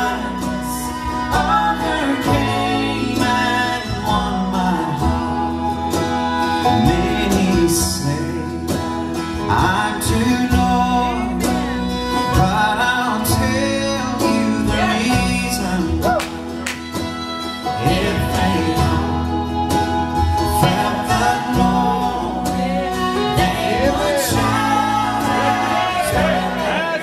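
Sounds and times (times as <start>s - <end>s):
acoustic guitar: 0.0s - 27.0s
banjo: 0.0s - 27.0s
bass guitar: 0.0s - 27.0s.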